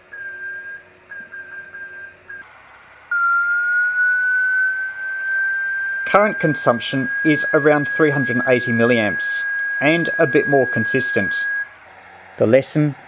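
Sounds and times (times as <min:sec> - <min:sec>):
morse code tones: 0:00.1 - 0:02.4, 0:03.1 - 0:11.7.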